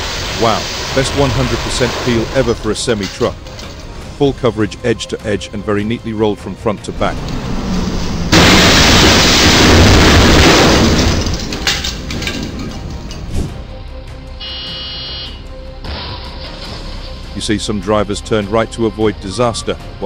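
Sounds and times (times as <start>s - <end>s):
background music: 0.0s - 20.0s
truck crashing into bridge: 7.0s - 13.3s.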